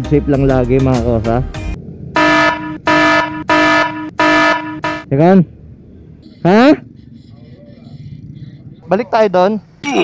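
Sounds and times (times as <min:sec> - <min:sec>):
buzzy electronic beep: 0:02.2 - 0:05.1, 0:06.2 - 0:08.0.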